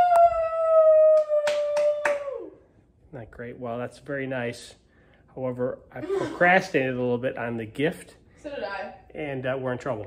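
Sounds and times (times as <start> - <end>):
sharp hand claps: 1.1 - 2.4.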